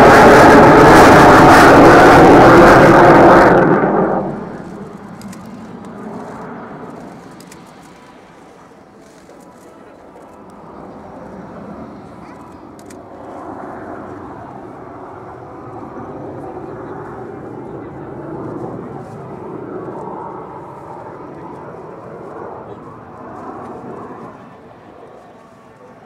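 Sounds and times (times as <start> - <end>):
jet fighter flying past: 0.0 - 26.0.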